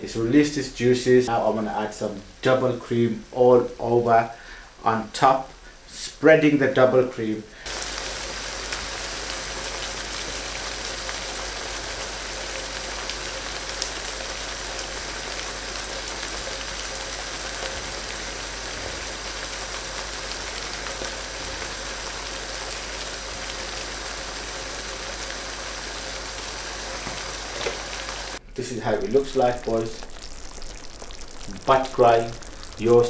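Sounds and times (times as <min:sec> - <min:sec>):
curry sizzling and bubbling in pan: 0:07.6 - 0:33.0.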